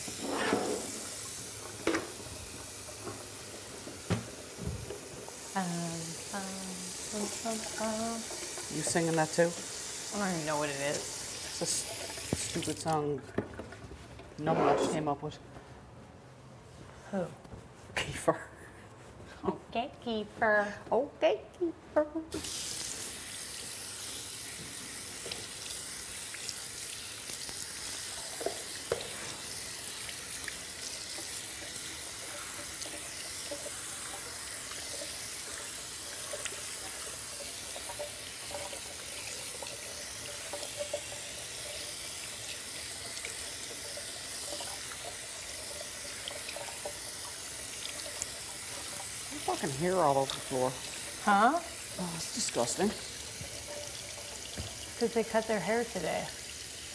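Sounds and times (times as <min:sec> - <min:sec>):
tap water splashing into sink: 0:00.8 - 0:05.5, 0:07.2 - 0:13.7, 0:24.5 - 0:56.9.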